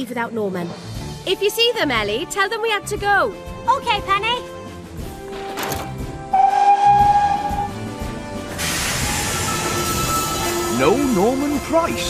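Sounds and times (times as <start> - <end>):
background music: 0.0 - 12.0
steam locomotive whistle: 6.3 - 8.0, 8.6 - 11.4
hiss of steam: 8.5 - 10.8.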